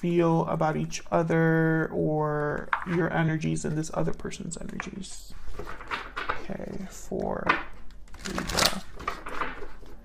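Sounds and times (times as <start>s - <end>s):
cards being shuffled: 7.8s - 10.0s.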